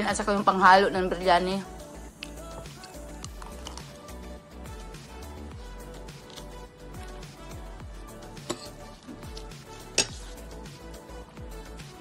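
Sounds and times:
background music with steady beat: 0:00.0 - 0:12.0
cutlery clinking against plate: 0:08.5 - 0:08.8.

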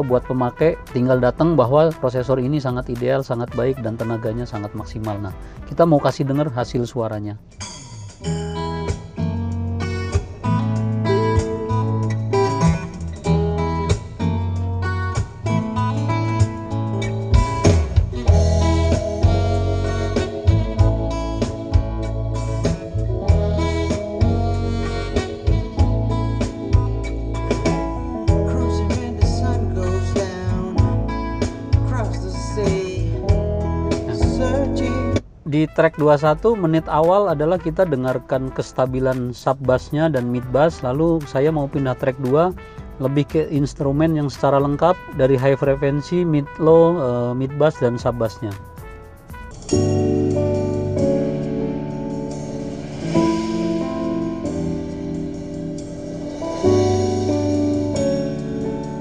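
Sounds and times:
plucked guitar: 0:07.4 - 0:36.9, 0:47.4 - 0:59.0
instrumental music sustained chords: 0:08.2 - 0:35.2, 0:35.8 - 0:59.0
deep bass notes: 0:08.3 - 0:38.6, 0:47.4 - 0:59.0.

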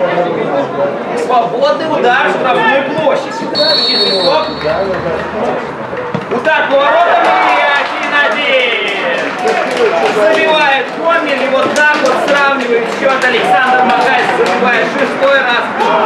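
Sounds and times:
men shouting excitedly: 0:02.0 - 0:04.2, 0:06.4 - 0:08.3, 0:13.3 - 0:16.0.

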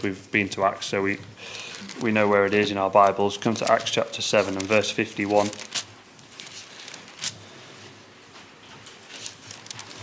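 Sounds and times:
thin paper pages rustling: 0:01.7 - 0:08.0, 0:08.7 - 0:10.0.

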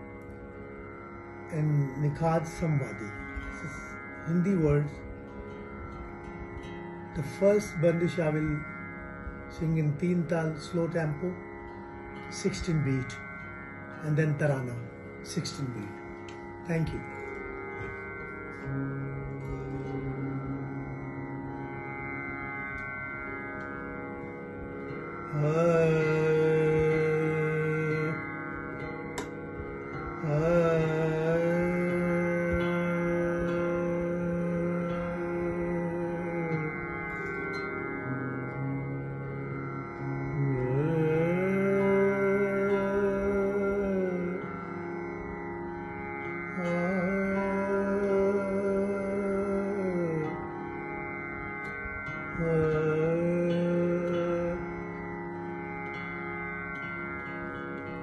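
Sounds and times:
steady drone: 0:00.0 - 0:58.0
man singing long notes: 0:18.5 - 0:21.9, 0:24.8 - 0:29.3, 0:30.2 - 0:45.4, 0:46.2 - 0:50.9, 0:51.6 - 0:56.1.

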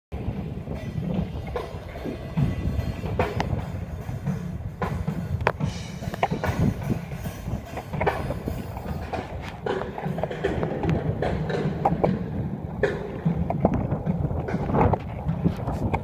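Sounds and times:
skateboard wheels rolling on concrete: 0:00.1 - 0:16.0
skateboard clacks and knocks: 0:04.2 - 0:16.0.

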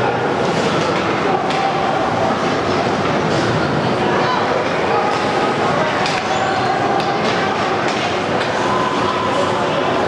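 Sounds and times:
hockey stick clacks: 0:06.0 - 0:08.6.

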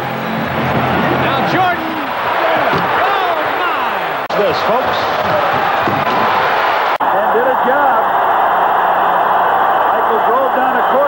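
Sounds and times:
arena crowd cheering: 0:00.0 - 0:11.0.

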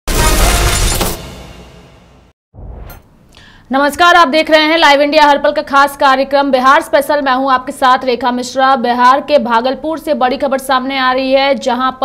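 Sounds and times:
crash sound effect: 0:00.1 - 0:03.2.

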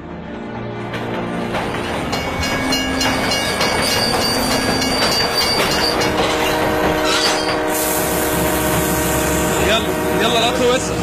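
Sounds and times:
diesel train running: 0:00.0 - 0:11.0
train wheels clacking on rails: 0:00.8 - 0:09.3.

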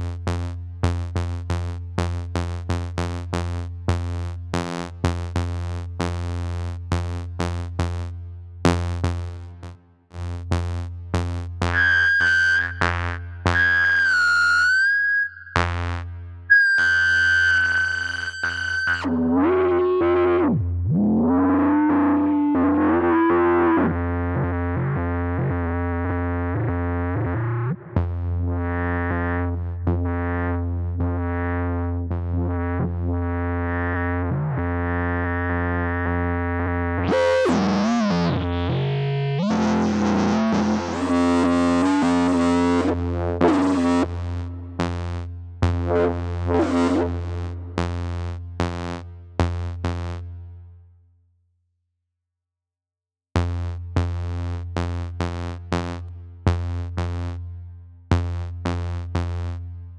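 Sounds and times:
deep bass drone: 0:00.0 - 0:11.9, 0:19.0 - 0:50.5, 0:53.4 - 0:59.9
sliding synth notes: 0:37.0 - 0:44.9, 0:45.8 - 0:47.8.

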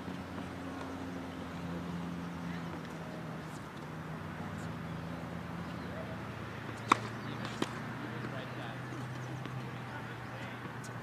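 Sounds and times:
tennis ball knock: 0:06.7 - 0:08.3.

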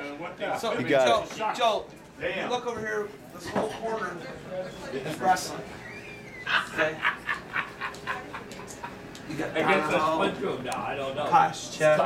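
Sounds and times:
person laughing: 0:06.5 - 0:09.0.

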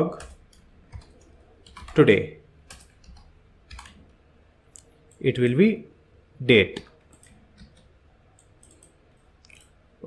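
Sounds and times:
keyboard keys clicking: 0:00.0 - 0:02.1, 0:02.7 - 0:04.1, 0:06.7 - 0:09.8.

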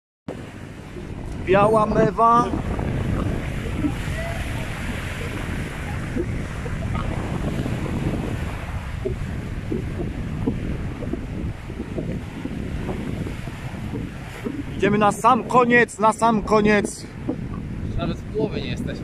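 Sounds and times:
sea surf breaking on boulders: 0:00.3 - 0:19.0
wind buffeting microphone: 0:00.3 - 0:19.0.

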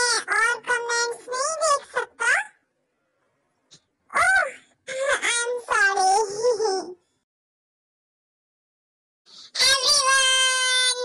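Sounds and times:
high-pitched voice wailing: 0:09.6 - 0:11.0.

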